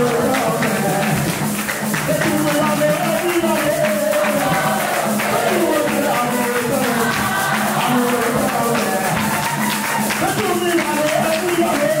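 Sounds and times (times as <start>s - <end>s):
group singing: 0.0s - 10.5s
hands clapping: 0.0s - 12.0s
steady percussion beat: 0.0s - 12.0s.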